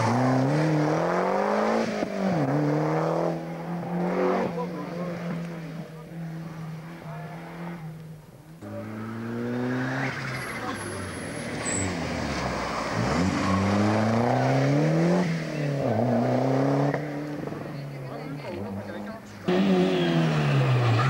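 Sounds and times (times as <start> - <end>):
rally car engines passing: 0.0 - 21.0.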